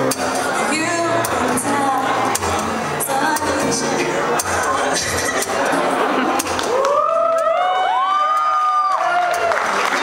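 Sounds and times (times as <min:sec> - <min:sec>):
audience cheering: 0:06.4 - 0:10.0
people whooping: 0:06.6 - 0:10.0.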